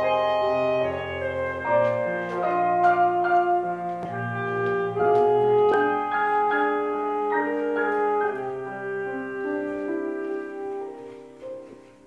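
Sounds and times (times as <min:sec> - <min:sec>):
alto saxophone jazz melody: 0:00.0 - 0:12.0.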